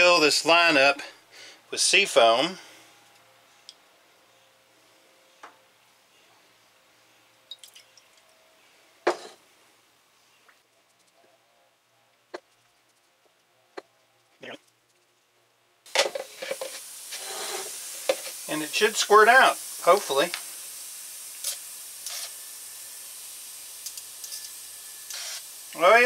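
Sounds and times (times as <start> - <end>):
compressed air hissing: 15.9 - 26.0.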